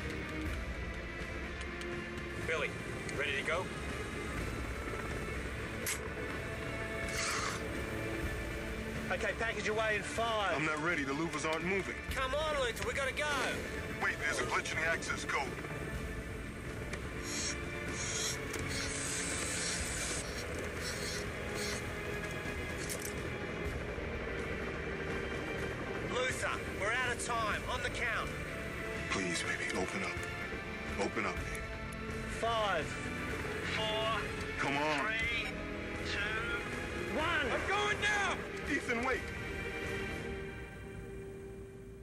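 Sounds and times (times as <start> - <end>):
tense film score music: 0.0 - 42.0.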